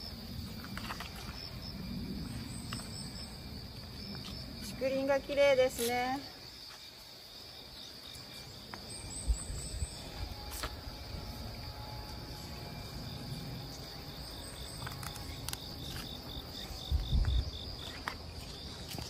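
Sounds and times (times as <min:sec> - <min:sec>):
insects singing: 0:00.0 - 0:19.0.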